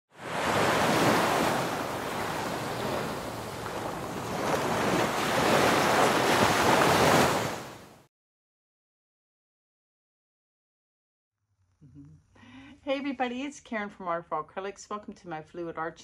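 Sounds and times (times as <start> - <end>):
rushing water roar: 0.1 - 7.9.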